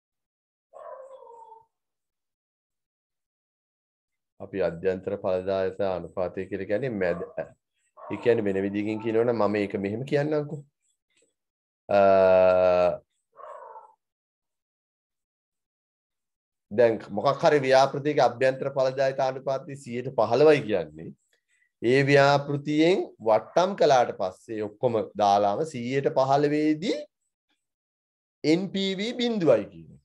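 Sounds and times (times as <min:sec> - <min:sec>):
animal call: 0:00.8 - 0:01.7, 0:07.0 - 0:09.4, 0:13.4 - 0:14.0.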